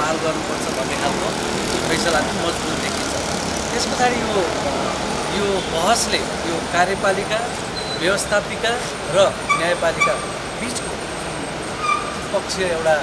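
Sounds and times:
man speaking: 0.0 - 3.1, 5.3 - 11.0
motorcycles passing: 0.0 - 13.0
road traffic: 0.0 - 13.0.

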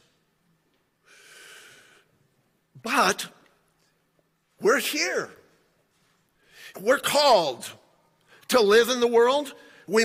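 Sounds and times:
man breathing in: 1.0 - 2.1
man speaking: 2.8 - 3.5, 4.6 - 5.5, 6.7 - 10.0.

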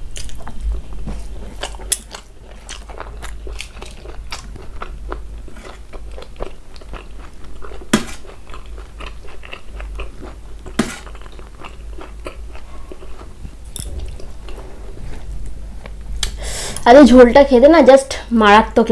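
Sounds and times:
chewing and wet mouth sounds: 0.1 - 16.8.

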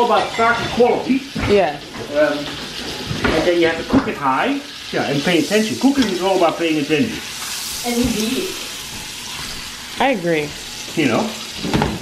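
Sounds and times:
meat sizzling in skillet: 0.0 - 12.0.

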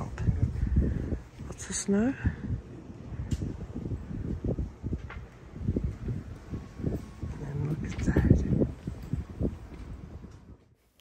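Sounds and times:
wind rumbling on microphone: 0.0 - 10.8.

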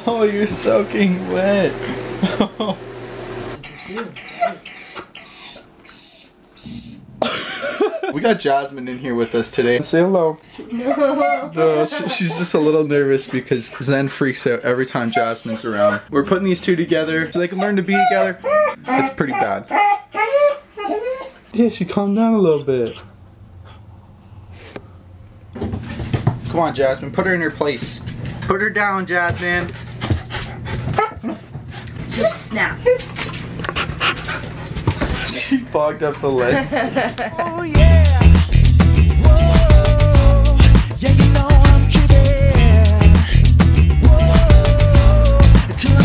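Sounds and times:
dog whining: 3.6 - 8.0, 9.2 - 9.7, 10.4 - 12.6, 13.2 - 16.1, 17.3 - 23.2, 32.1 - 33.6
dogs play-fighting: 29.2 - 35.4.

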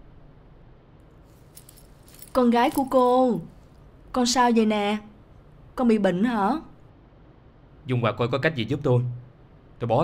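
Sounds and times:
low room hum: 0.0 - 10.0
metal fittings jingling: 1.4 - 3.2.

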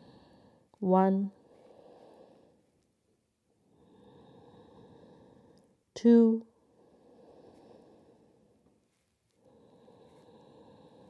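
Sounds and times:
slow soft breathing: 0.0 - 11.0.

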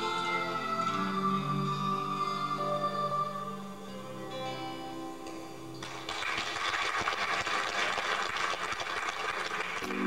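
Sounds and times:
audience applause: 5.8 - 10.0.

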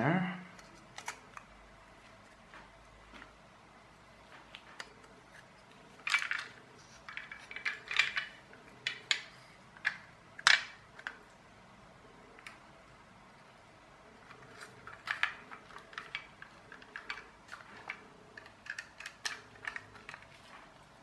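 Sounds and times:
toy car parts clinking and scraping: 4.4 - 11.2, 14.2 - 21.0.

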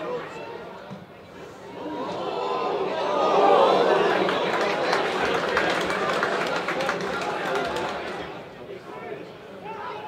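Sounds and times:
football crowd voices: 0.0 - 10.0
scattered hand-clapping: 4.2 - 8.3.

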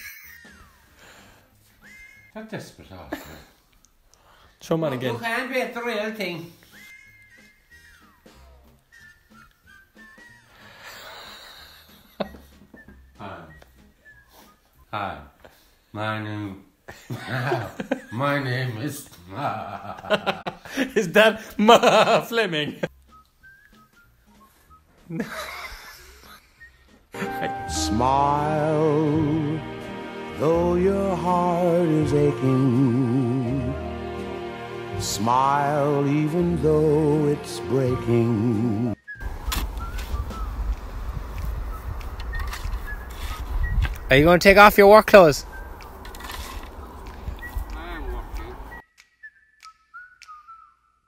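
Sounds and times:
faint whistling: 0.6 - 2.4, 6.5 - 15.7, 22.8 - 29.3, 38.6 - 44.3, 45.4 - 51.0
finger snaps: 47.0 - 50.8.

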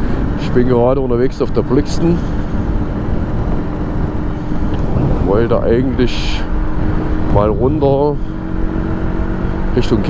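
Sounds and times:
motorcycle engine humming: 0.0 - 10.0
road rumble: 0.0 - 10.0
wind on microphone: 2.2 - 9.5.

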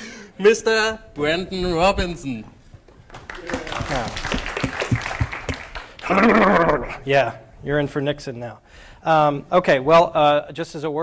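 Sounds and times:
audience clapping: 2.9 - 6.8.

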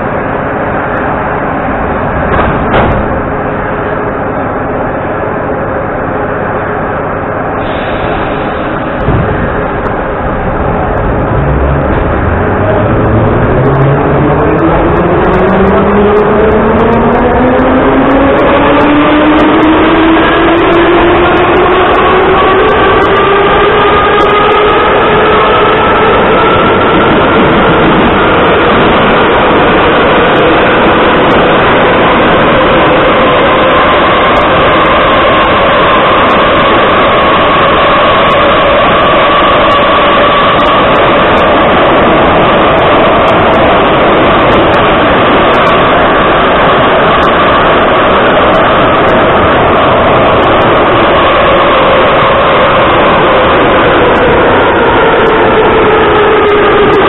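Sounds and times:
traction motor and gear whine: 0.0 - 57.0
wheels rumbling on rails: 0.0 - 57.0.

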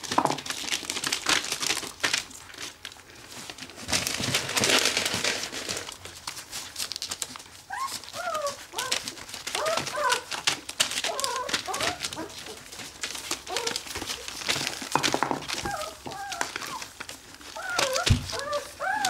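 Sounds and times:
newspaper crinkling: 0.0 - 19.0
puppies whimpering: 7.3 - 14.8, 15.4 - 19.0.

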